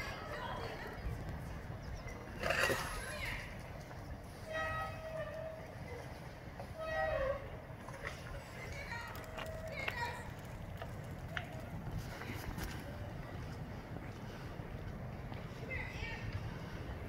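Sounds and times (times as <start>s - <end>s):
faint indistinct voices: 0.0s - 17.0s.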